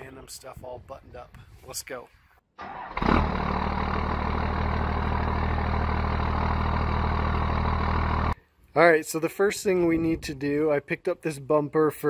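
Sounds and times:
diesel engine idling: 0:02.6 - 0:08.4.

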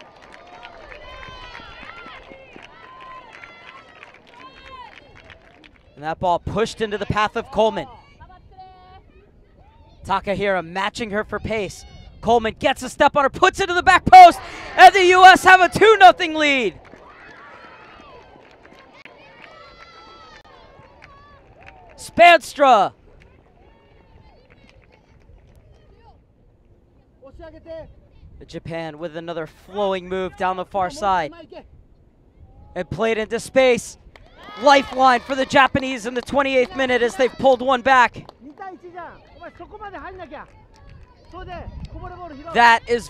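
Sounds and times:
faint shouts and cheers: 0:00.0 - 0:10.2, 0:11.3 - 0:12.3, 0:13.5 - 0:26.2, 0:32.4 - 0:43.0.

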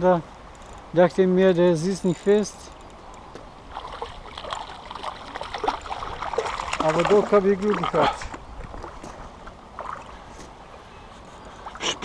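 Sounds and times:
faint water movement: 0:01.8 - 0:12.0
wind rumbling on microphone: 0:02.8 - 0:10.3.

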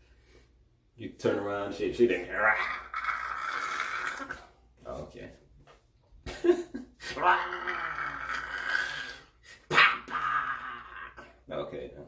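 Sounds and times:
man whining groan: 0:07.0 - 0:11.4
man yelping: 0:07.1 - 0:08.9, 0:09.6 - 0:11.4.

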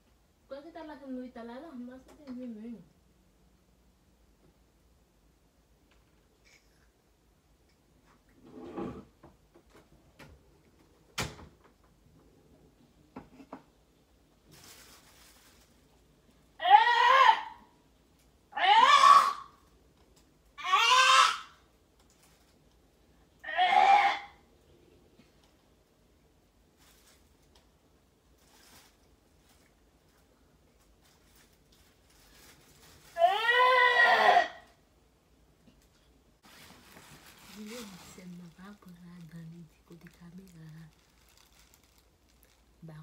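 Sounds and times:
faint rustling: 0:14.3 - 0:16.4, 0:25.0 - 0:33.3, 0:35.7 - 0:43.0.

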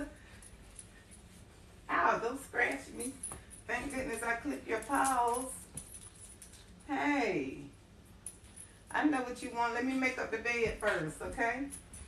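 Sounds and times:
woman's voice: 0:00.0 - 0:00.2, 0:01.9 - 0:05.7, 0:06.9 - 0:07.7, 0:08.9 - 0:11.8.

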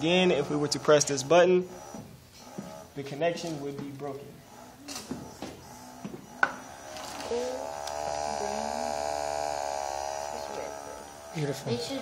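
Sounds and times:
thruster motors buzzing whine: 0:00.0 - 0:03.6, 0:04.4 - 0:12.0.

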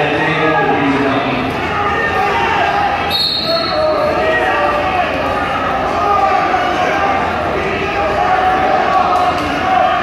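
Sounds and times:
voices calling out and chattering: 0:00.0 - 0:10.0.

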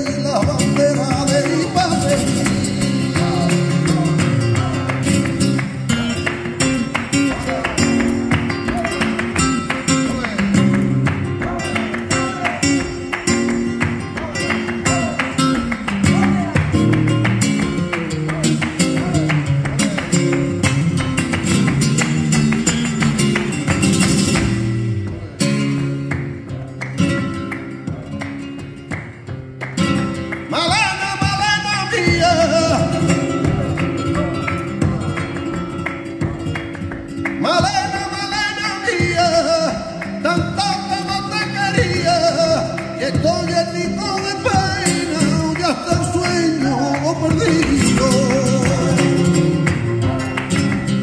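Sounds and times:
man singing: 0:00.0 - 0:17.0, 0:30.4 - 0:36.6, 0:37.3 - 0:51.0
flamenco guitar playing: 0:00.0 - 0:51.0
rhythmic hand-clapping: 0:00.0 - 0:51.0.

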